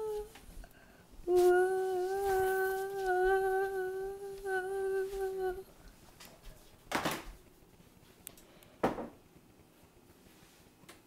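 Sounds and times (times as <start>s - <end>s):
person humming a steady note: 0.0s - 0.4s, 1.2s - 5.7s.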